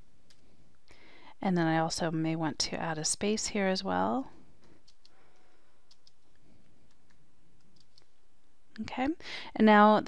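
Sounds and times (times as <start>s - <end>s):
computer keyboard clicks: 4.8s - 8.1s.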